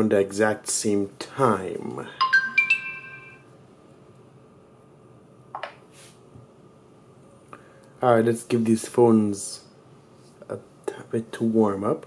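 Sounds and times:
phone notification chime: 2.2s - 3.4s.

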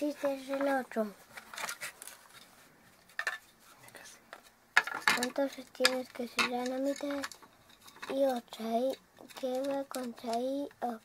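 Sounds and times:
faint taps and rustles: 0.1s - 8.5s.

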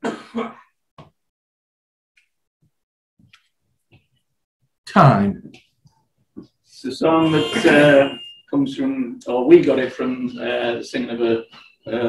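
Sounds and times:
man clearing his throat: 0.0s - 0.7s.

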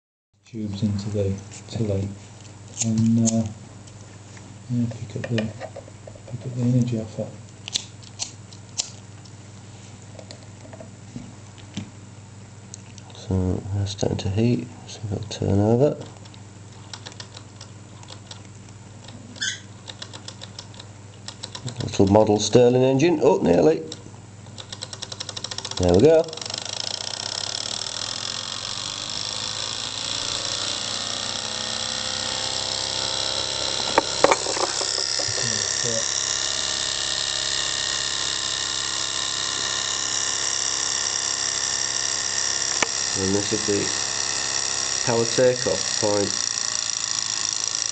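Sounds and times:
steady low hum: 0.4s - 47.9s
sharp clicks: 16.0s - 22.0s, 23.9s - 32.1s
engine flywheel whirring and rattling: 26.4s - 47.9s.

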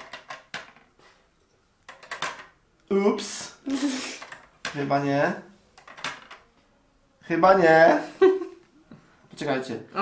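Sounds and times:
plastic pieces clicking: 0.0s - 0.9s, 1.8s - 2.6s, 4.1s - 4.8s, 5.8s - 6.5s.

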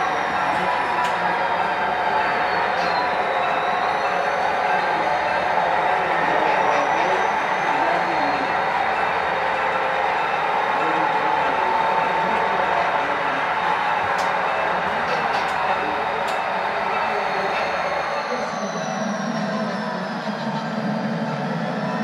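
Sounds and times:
model diesel locomotive engine sound: 0.0s - 22.0s.

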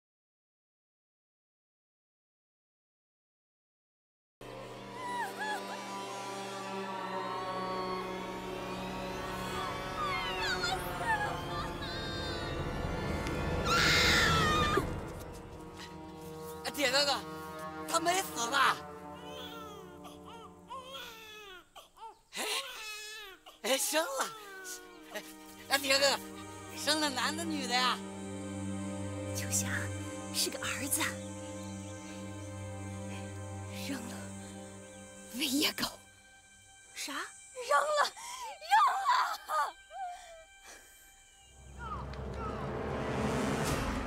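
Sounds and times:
woman wailing cry: 5.0s - 6.0s, 9.4s - 12.7s, 37.8s - 40.4s
newborn baby crying: 19.2s - 25.0s
low rumble: 41.6s - 44.0s.

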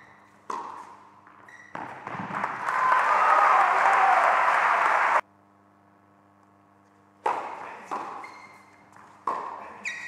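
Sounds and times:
audience applause: 2.4s - 5.2s.

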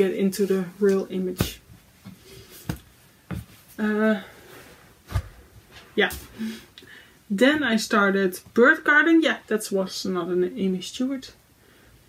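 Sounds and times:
woman speaking: 0.0s - 1.6s, 3.8s - 4.4s, 5.9s - 6.6s, 7.3s - 11.4s.

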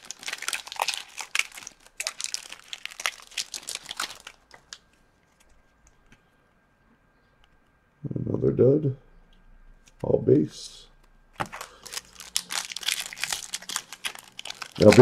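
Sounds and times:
foil wrapper crinkling and tearing: 0.0s - 5.5s, 11.4s - 15.0s.

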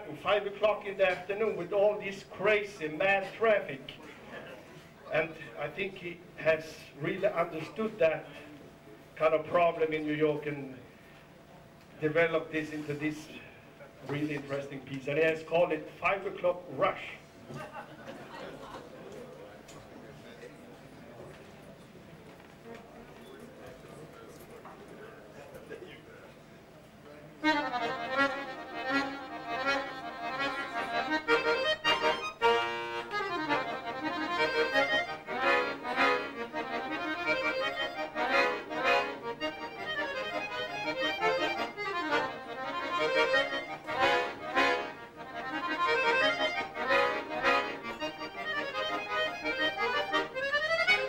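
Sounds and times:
accordion playing lively solo: 27.4s - 51.0s.

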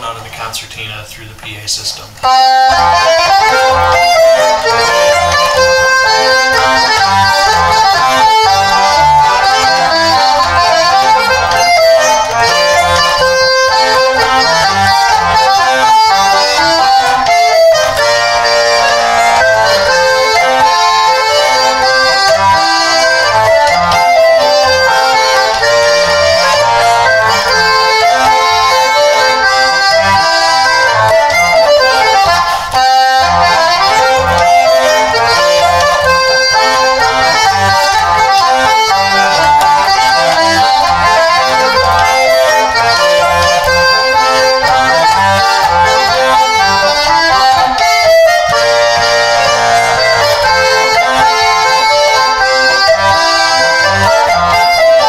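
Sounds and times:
concertina playing a tune: 2.1s - 55.0s.

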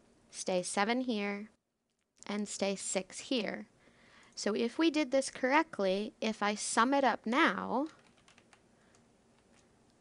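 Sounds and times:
faint keyboard typing: 7.8s - 10.0s.

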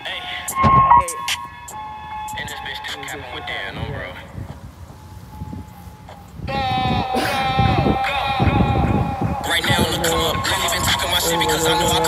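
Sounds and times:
wind rumbling on microphone: 0.4s - 12.0s.

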